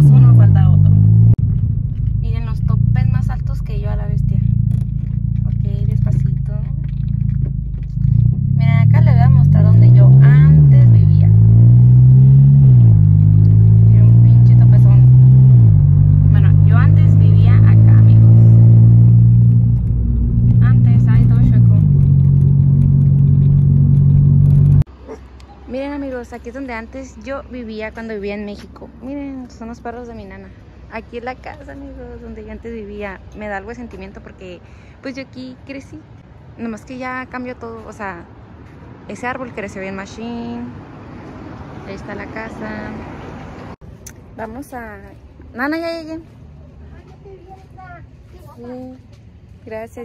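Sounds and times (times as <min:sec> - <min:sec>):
car engine hum from cabin: 0:00.0 - 0:25.2.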